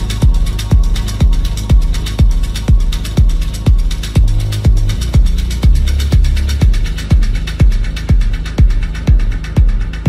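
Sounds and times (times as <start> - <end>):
hi-hat ticks: 0.0 - 10.0
kick drum: 0.0 - 10.0
stepping bassline: 0.0 - 10.0.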